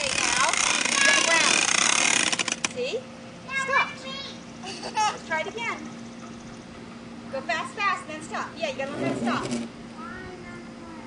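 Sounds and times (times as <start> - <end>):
children calling: 0.0 - 2.0.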